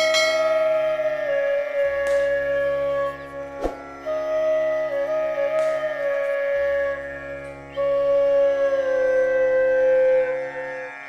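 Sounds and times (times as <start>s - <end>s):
bell-like chime: 0.0s - 0.6s
flute-like wind instrument music: 0.0s - 11.0s.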